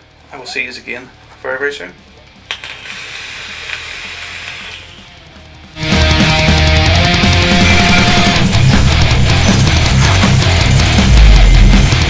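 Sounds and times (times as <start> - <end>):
vape device click: 2.5 - 3.0
steady hiss of air: 2.5 - 5.3
loud rock music with guitar: 5.0 - 12.0.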